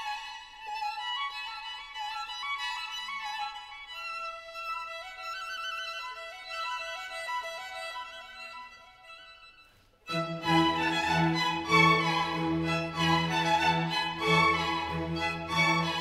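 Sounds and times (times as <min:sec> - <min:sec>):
slow violin melody: 0:00.0 - 0:16.0.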